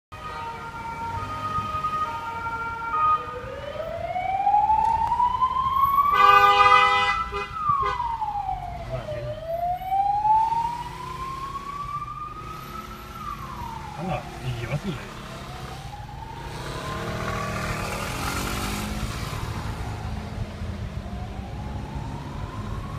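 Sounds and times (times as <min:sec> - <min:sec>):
ambulance siren: 0:00.1 - 0:22.9.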